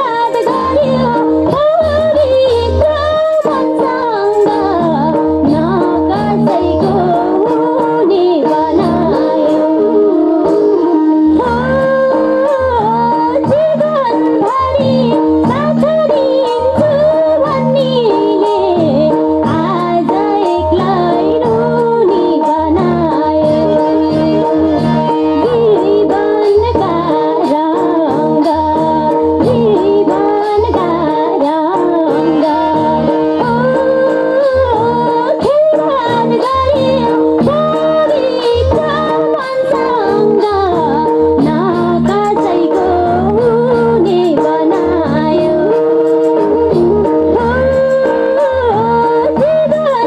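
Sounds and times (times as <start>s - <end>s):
harmonium: 0.0s - 50.0s
instrumental accompaniment: 0.0s - 50.0s
woman singing folk song: 0.0s - 50.0s.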